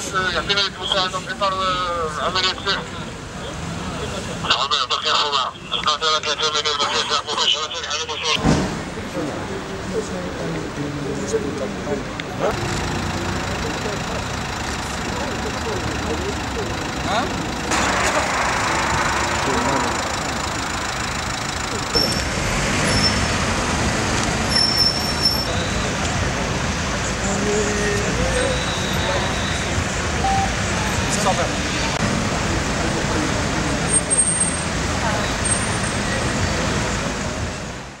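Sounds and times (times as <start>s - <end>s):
indistinct voices: 0.0s - 37.0s
traffic noise: 0.0s - 38.0s.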